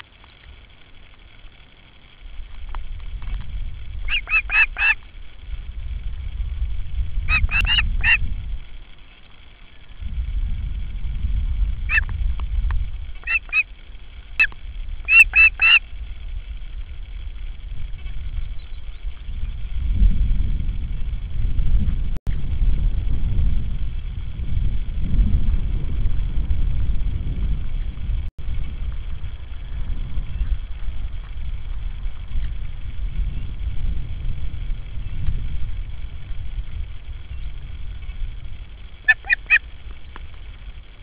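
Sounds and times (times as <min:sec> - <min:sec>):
wind rumbling on microphone: 0:00.0 - 0:41.0
osprey whistled calls: 0:04.0 - 0:05.1, 0:07.2 - 0:08.3, 0:11.9 - 0:12.1, 0:13.0 - 0:16.0, 0:39.0 - 0:40.2.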